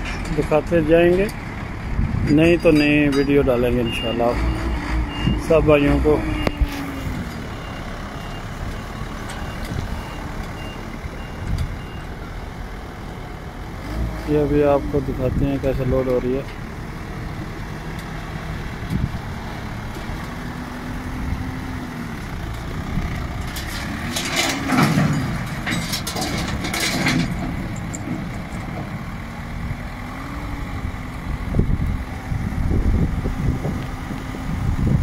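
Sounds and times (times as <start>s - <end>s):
truck engine revving: 0.0s - 35.0s.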